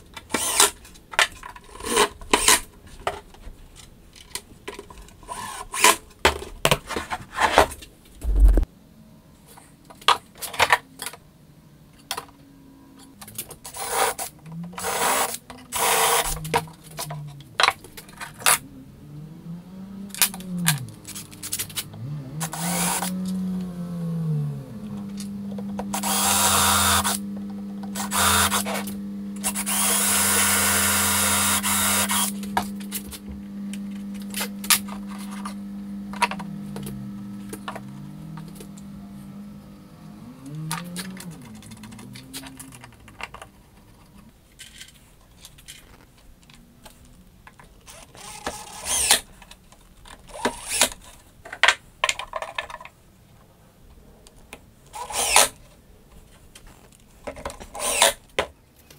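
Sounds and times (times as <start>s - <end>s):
cordless drill drilling: 0.3s - 0.7s, 14.8s - 16.6s, 22.4s - 23.2s, 25.8s - 27.3s, 27.9s - 32.9s, 47.9s - 49.2s, 50.3s - 50.9s, 55.0s - 55.5s, 57.8s - 58.2s
tools being handled: 44.1s - 46.6s.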